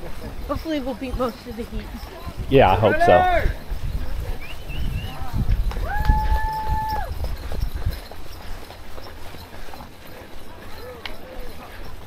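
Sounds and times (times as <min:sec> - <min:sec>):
voices: 0:00.0 - 0:07.1, 0:09.3 - 0:12.0.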